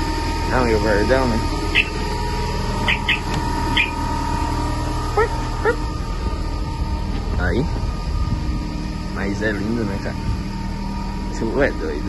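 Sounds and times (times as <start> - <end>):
diesel truck engines idling: 0.0 - 12.0
short high chirps: 1.7 - 2.0, 2.9 - 4.0
quick rising calls: 1.7 - 2.1, 2.7 - 5.9.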